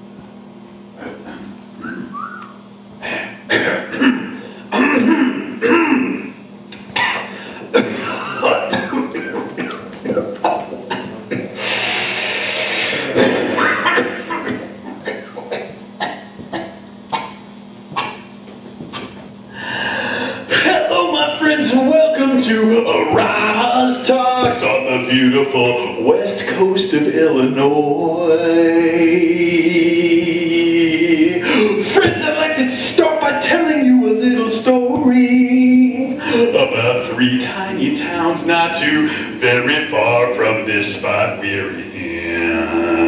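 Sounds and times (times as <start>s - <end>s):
low electrical hum: 0.0s - 43.0s
short whistle-like notes: 1.8s - 2.6s
person coughing: 3.2s - 6.3s, 6.9s - 11.6s, 13.0s - 17.4s, 18.0s - 18.3s
voice-like sound: 41.4s - 43.0s.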